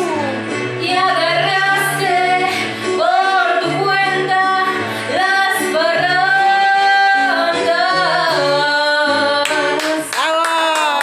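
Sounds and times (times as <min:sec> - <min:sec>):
woman singing into a microphone: 0:00.0 - 0:10.2.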